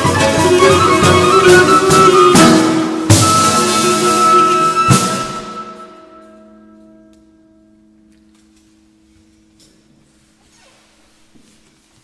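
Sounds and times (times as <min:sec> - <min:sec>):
held musical note: 0:00.0 - 0:10.4.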